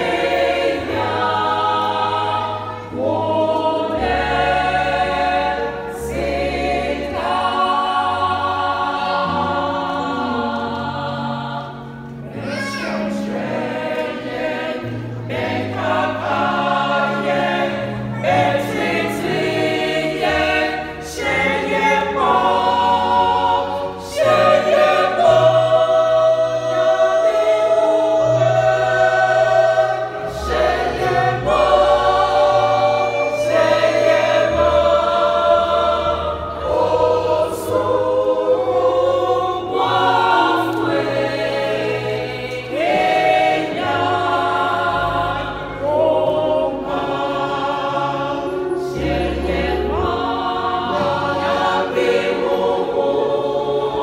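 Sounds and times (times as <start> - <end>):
choir singing a hymn: 0.0 - 54.0.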